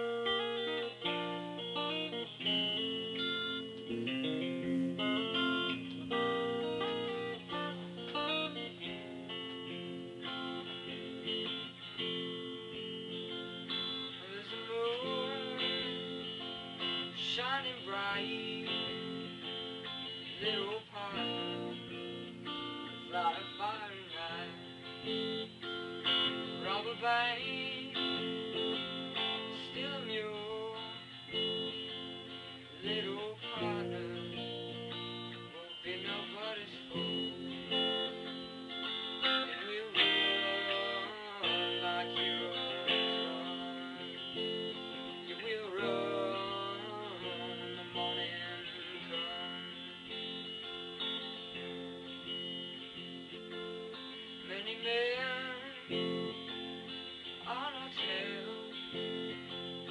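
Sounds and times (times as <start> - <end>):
guitar strumming and picking: 0.0 - 59.9.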